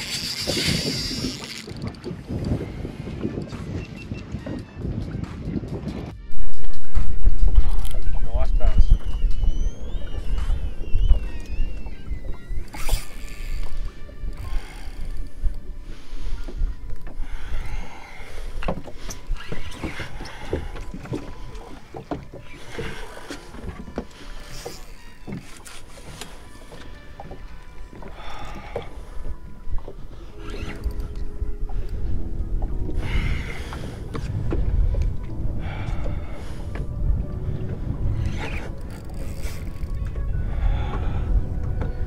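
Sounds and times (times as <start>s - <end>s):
water lapping against boat hull: 0.0s - 4.8s, 6.4s - 42.0s
wind rumbling on microphone: 0.0s - 42.0s.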